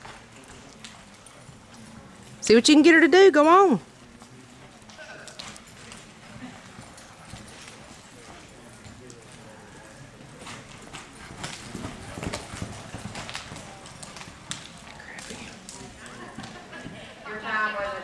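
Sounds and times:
horse hoofbeats on dirt: 0.0 - 17.0.

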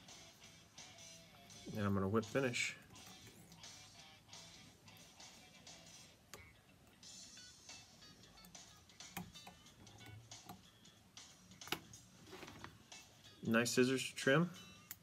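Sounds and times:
faint background music: 0.0 - 15.0.

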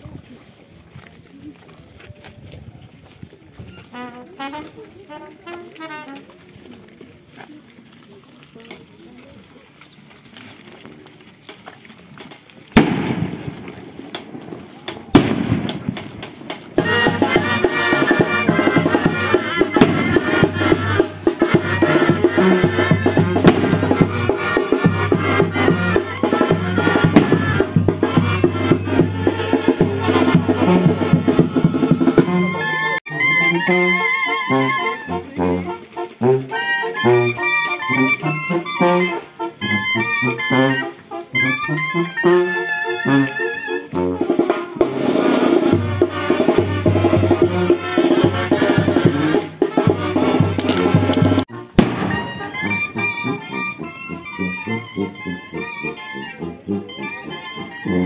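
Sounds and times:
brass band music: 3.9 - 6.6, 12.8 - 58.0
sharp bang: 51.8 - 52.5.

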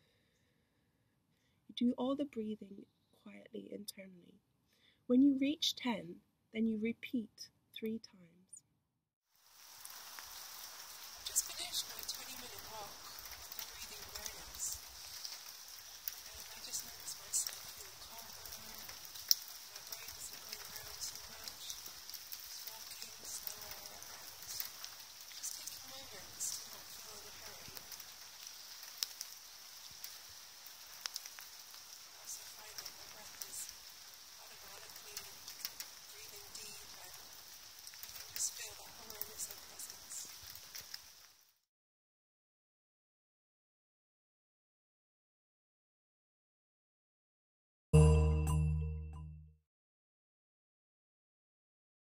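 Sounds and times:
woman breathing slowly: 0.0 - 1.7, 4.7 - 5.1
faint hiss: 9.4 - 41.6
light crackling clicks: 11.4 - 41.4.

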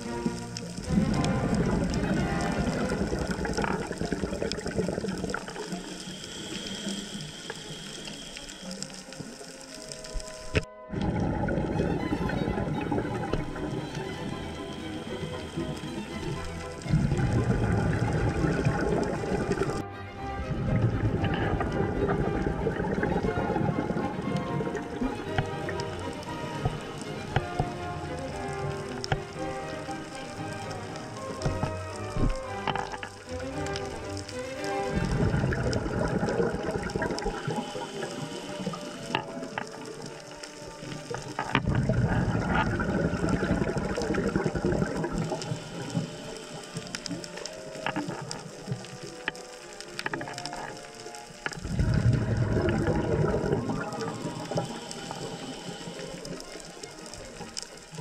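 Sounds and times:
underwater exhaust bubbling: 0.0 - 58.0.

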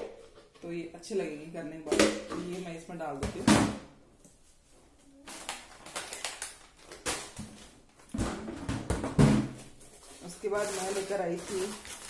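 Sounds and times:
plastic containers knocking: 7.4 - 9.8
rustling: 9.6 - 12.0.

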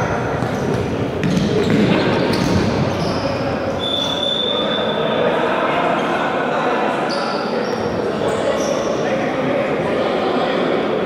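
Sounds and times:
sports hall background noise: 0.0 - 11.0.

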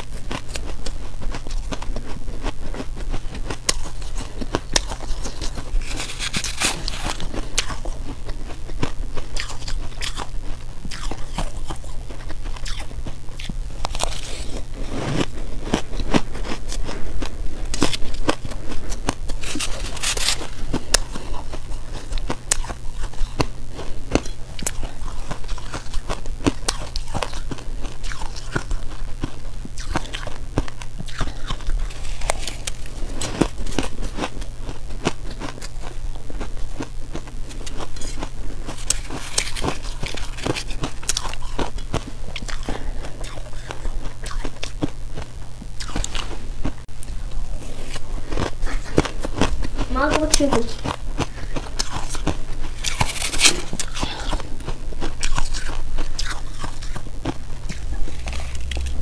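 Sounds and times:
crunching and chewing ice: 0.0 - 59.0
low steady hum: 0.0 - 59.0.

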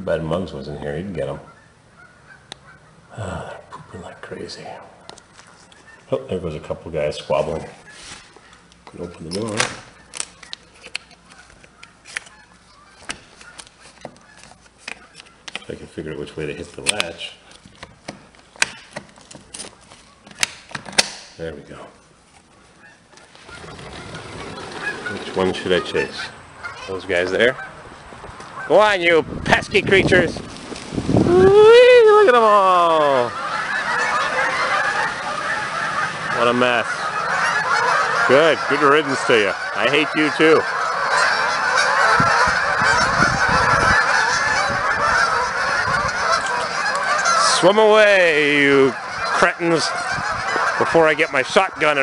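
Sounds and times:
geese honking and squawking: 0.7 - 19.0, 19.6 - 52.0.

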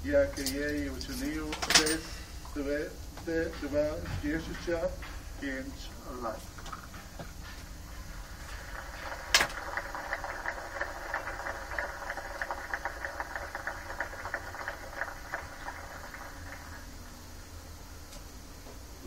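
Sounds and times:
audience applause: 8.3 - 17.0.

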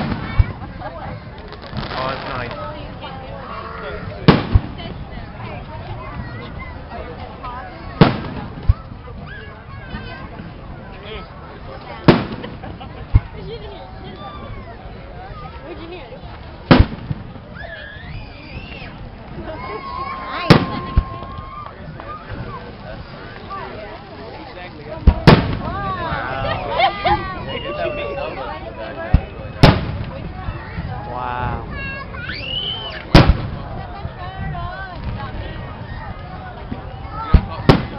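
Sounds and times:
fireworks bang: 0.0 - 2.7, 4.2 - 5.2, 7.9 - 9.3, 12.0 - 13.4, 16.7 - 17.5, 20.3 - 22.5, 25.0 - 26.2, 29.1 - 30.9, 32.9 - 33.8, 36.7 - 37.9
firework shells bursting: 8.0 - 8.8, 12.1 - 12.6, 16.7 - 17.4, 25.0 - 25.8, 29.1 - 30.2, 33.0 - 33.6
low firework thump: 25.0 - 25.9.

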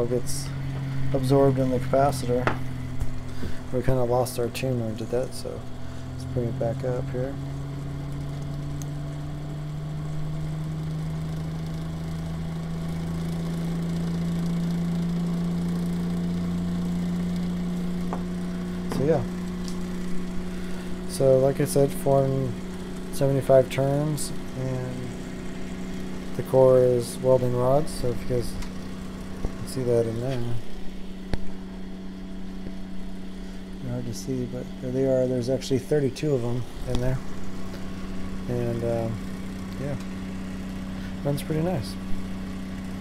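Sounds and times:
electric motor humming: 0.0 - 43.0.

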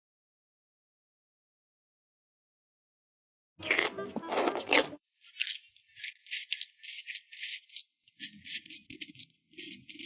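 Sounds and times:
cabbage leaf slurped and chewed: 3.6 - 10.0.

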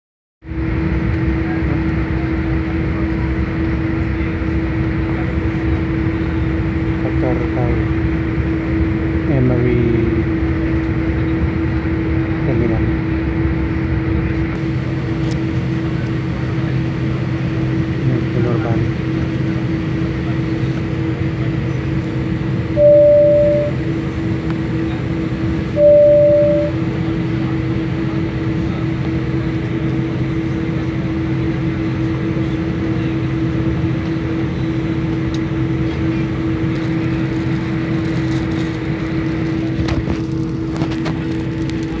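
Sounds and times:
airliner cabin hum: 0.5 - 42.0.

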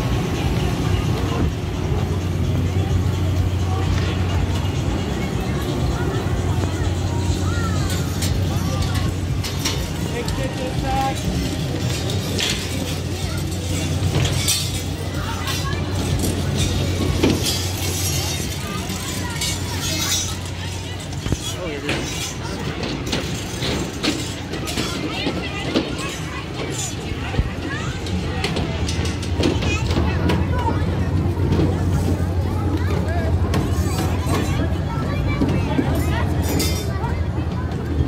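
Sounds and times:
crowd chatter: 0.0 - 38.0
low hum of fairground machinery: 0.0 - 38.0.

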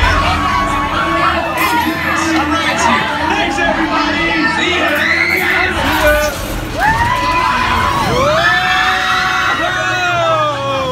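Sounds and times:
riders screaming: 4.7 - 10.9.

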